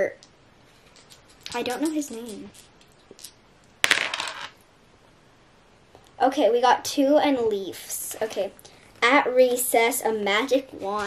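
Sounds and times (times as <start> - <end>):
dice clattering on tabletop: 0.2 - 4.6.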